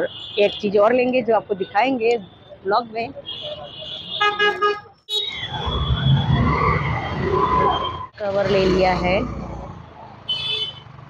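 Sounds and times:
motorbike and scooter traffic: 0:00.0 - 0:11.0
vehicle horn beeps: 0:03.3 - 0:05.9.

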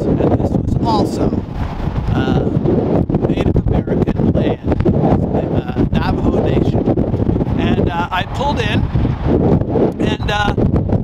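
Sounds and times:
wind buffeting microphone: 0:00.0 - 0:11.0
man's voice: 0:00.1 - 0:01.4, 0:02.1 - 0:02.6, 0:03.2 - 0:06.8, 0:07.5 - 0:08.9, 0:10.0 - 0:10.6.

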